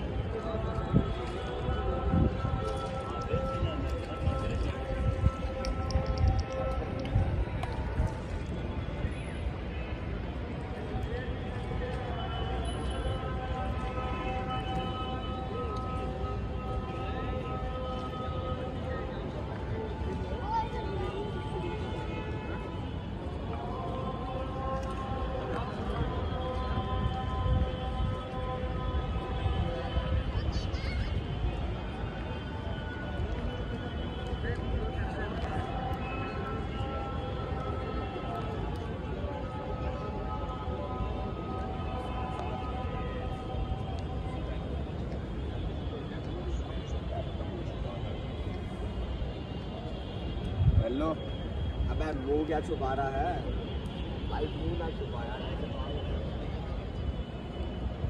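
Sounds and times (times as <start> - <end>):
crowd murmur: 0.0 - 58.0.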